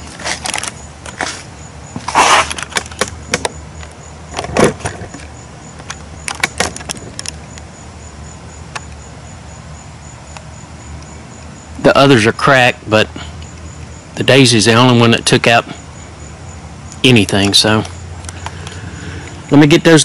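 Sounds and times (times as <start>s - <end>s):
loud rustles: 0.0s - 3.0s
microphone handling clicks and knocks: 0.2s - 7.5s.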